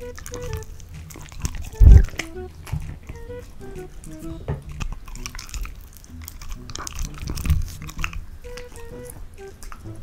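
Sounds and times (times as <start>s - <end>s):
dog chewing meat: 0.0s - 10.0s.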